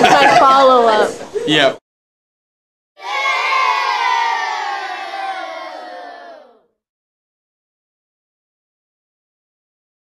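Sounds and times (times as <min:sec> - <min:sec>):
crowd shouting: 0:03.0 - 0:06.7.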